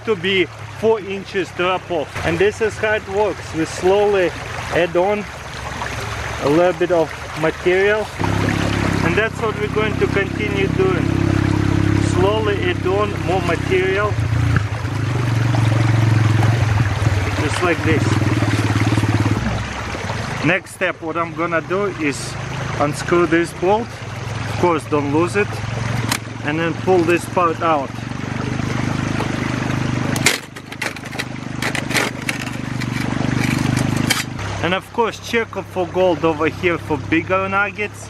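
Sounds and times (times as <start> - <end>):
stream water rushing over rocks: 0.0 - 38.0
metal clicks and knocks: 30.1 - 34.4.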